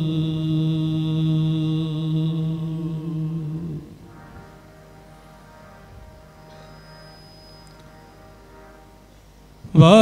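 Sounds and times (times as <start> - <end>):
man singing long note: 0.0 - 4.8, 9.6 - 10.0.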